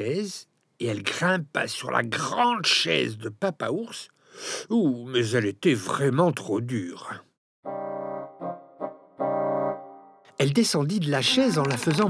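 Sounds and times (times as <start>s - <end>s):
keyboard notes: 7.6s - 10.4s.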